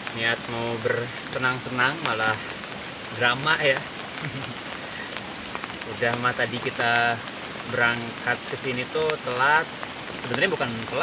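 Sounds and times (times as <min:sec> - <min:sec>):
rain on a tent: 0:00.0 - 0:11.0.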